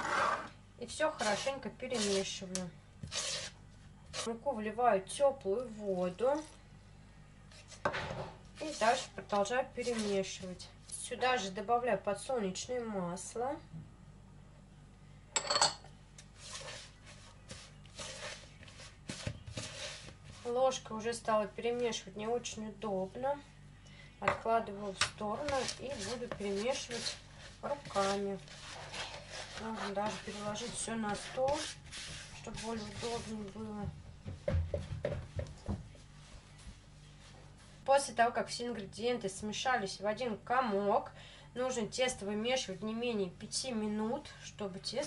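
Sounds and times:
metal spoon scraping plastic bowl: 0.0 - 2.4, 3.0 - 4.3, 17.5 - 20.4, 25.4 - 33.4
hands thumping dough: 32.8 - 35.9.

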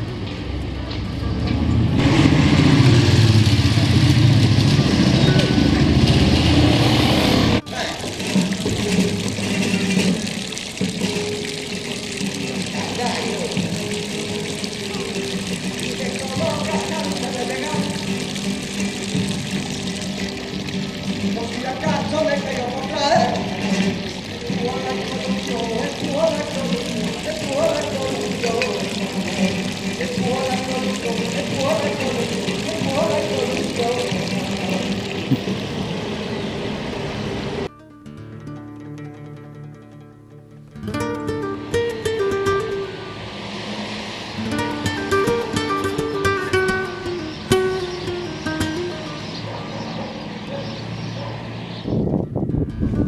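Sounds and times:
fountain water splashing: 2.0 - 37.7, 40.9 - 49.5
people talking: 7.6 - 8.2, 12.6 - 13.6, 15.8 - 18.1, 21.4 - 35.3
music: 7.6 - 35.3, 37.7 - 49.5, 52.3 - 53.0
voices: 12.5 - 13.9, 14.7 - 18.9, 21.2 - 36.6.

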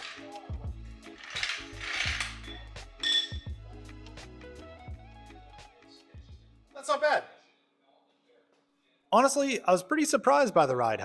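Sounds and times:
background music: 0.0 - 7.4.

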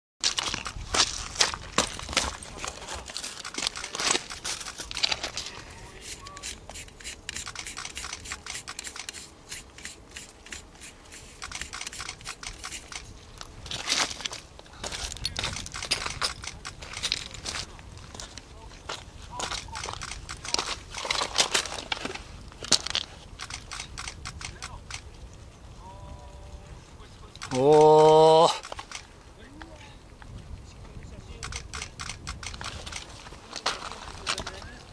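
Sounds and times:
sharp clicks and crackling: 0.2 - 5.6, 6.4 - 14.5, 15.2 - 17.7, 19.4 - 25.2, 27.3 - 29.7, 31.3 - 34.8.

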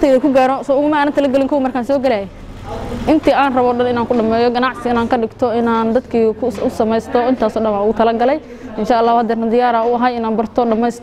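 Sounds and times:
woman chanting: 3.0 - 11.0.

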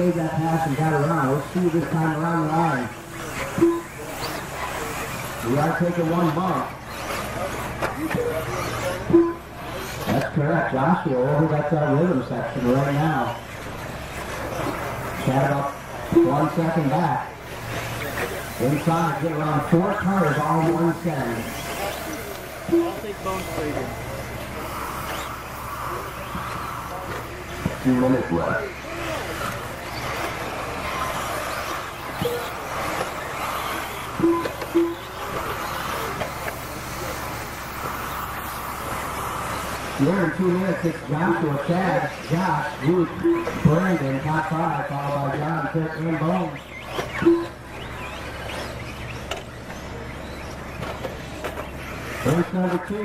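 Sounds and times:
electric motors whirring: 0.0 - 53.0
electric toy cars running: 0.0 - 53.0
tyres on dirt: 0.0 - 53.0.

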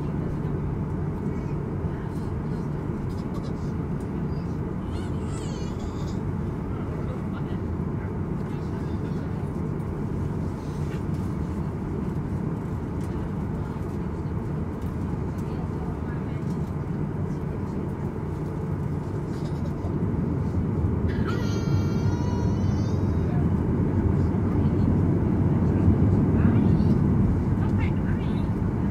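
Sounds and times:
jet cabin rumble while taxiing: 0.0 - 28.9.

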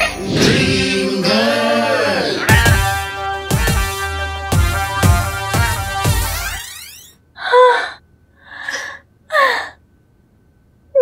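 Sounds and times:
woman gasping excitedly: 7.4 - 9.8.

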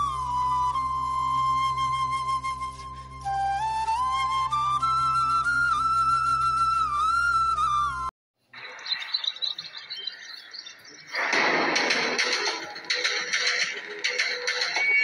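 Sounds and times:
flute melody: 0.0 - 8.1
loud music track: 11.1 - 15.0.

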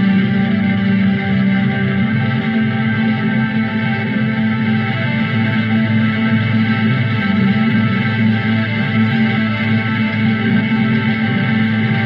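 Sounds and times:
ambient electric guitar music: 0.0 - 12.0.

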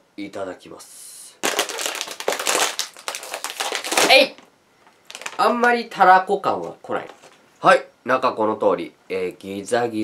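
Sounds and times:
plastic chip bag crinkling open: 1.4 - 5.8.

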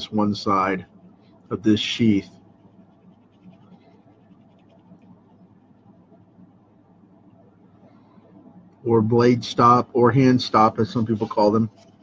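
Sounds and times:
pencil scratching on paper: 2.2 - 5.3.

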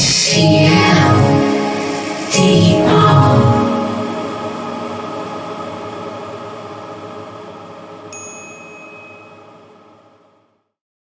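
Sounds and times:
bright ding: 8.1 - 9.6
jingle closing chord: 8.1 - 9.6.

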